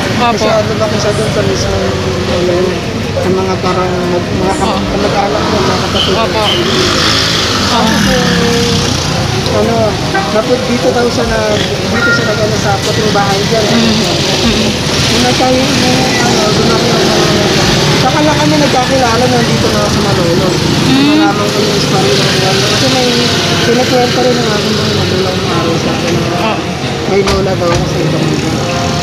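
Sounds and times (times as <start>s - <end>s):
street traffic: 0.0s - 29.0s
man talking: 9.5s - 28.5s.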